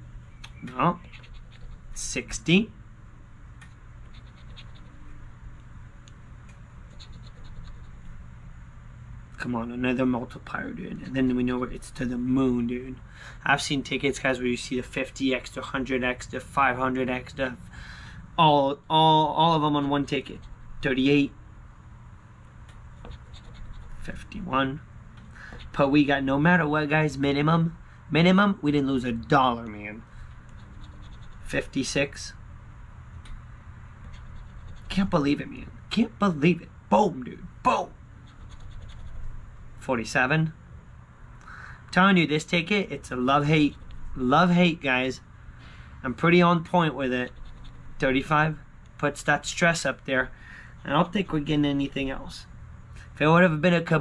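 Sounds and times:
low steady rumble: 0:00.0 - 0:54.0
coin scratching lottery ticket: 0:00.8 - 0:02.4, 0:04.0 - 0:05.2, 0:06.9 - 0:08.1, 0:23.0 - 0:24.4, 0:30.4 - 0:32.2, 0:34.0 - 0:35.3, 0:38.3 - 0:39.3, 0:47.1 - 0:48.3.

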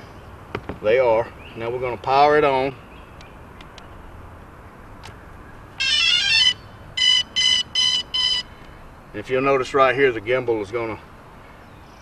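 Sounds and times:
evenly spaced beeps: 0:05.8 - 0:08.5.

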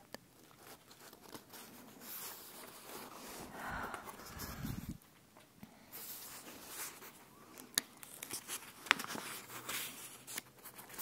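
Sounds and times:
book page rustling: 0:00.4 - 0:05.0, 0:05.9 - 0:11.0.

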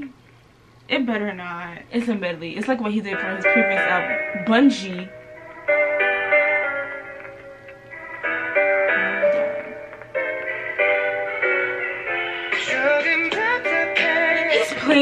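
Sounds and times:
keyboard piano chords: 0:02.1 - 0:15.0
person singing: 0:12.5 - 0:15.0.

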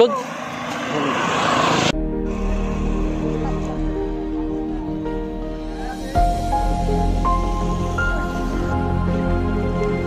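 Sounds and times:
rushing noise: 0:00.0 - 0:04.4.

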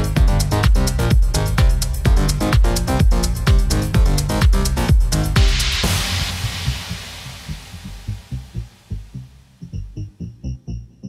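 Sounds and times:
pulsing low bass rhythm: 0:00.0 - 0:11.0.

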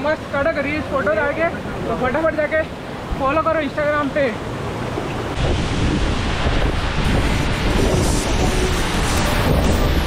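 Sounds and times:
stream rushing over boulders: 0:00.0 - 0:10.0
wind buffeting microphone: 0:04.7 - 0:10.0.

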